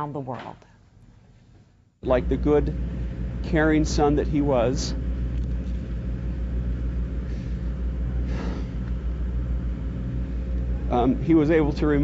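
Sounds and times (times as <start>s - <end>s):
faint hum: 0.0s - 12.0s
man speaking into microphone: 2.0s - 2.8s, 3.4s - 5.0s, 10.9s - 12.0s
low rumble: 2.0s - 12.0s.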